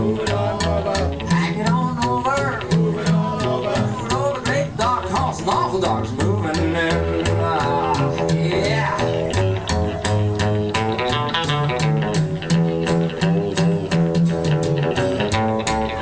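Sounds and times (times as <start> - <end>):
acoustic guitar: 0.0 - 16.0
electric guitar: 0.0 - 16.0
upright bass: 0.0 - 16.0.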